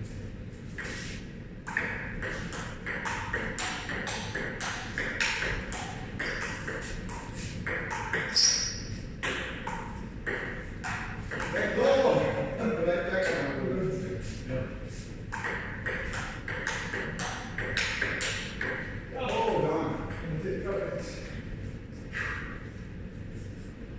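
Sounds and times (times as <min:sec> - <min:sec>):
table tennis ball hits: 0:01.7 - 0:11.7, 0:15.3 - 0:20.2.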